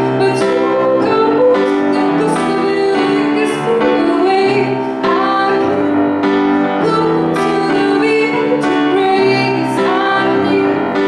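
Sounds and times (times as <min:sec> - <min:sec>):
grand piano chords: 0:00.0 - 0:11.0
woman singing a pop ballad: 0:00.0 - 0:11.0.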